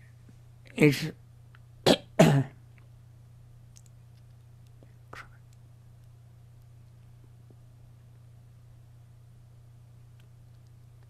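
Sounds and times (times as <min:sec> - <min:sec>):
steady low hum: 0:00.0 - 0:11.0
person clearing throat: 0:01.9 - 0:02.6.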